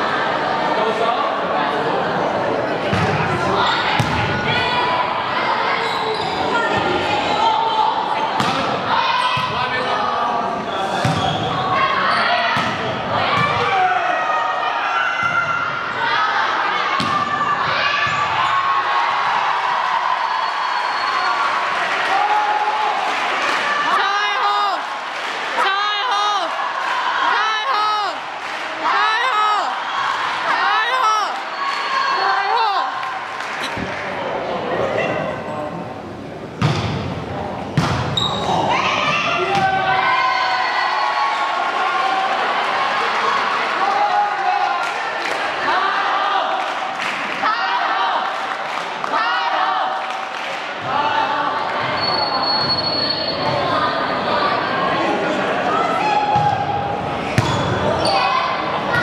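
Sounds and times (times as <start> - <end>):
players and spectators voices: 0.0 - 59.0
volleyball impacts in a gym: 2.8 - 4.9, 8.2 - 10.0, 10.8 - 16.2, 16.8 - 21.3, 36.5 - 40.1, 56.0 - 59.0.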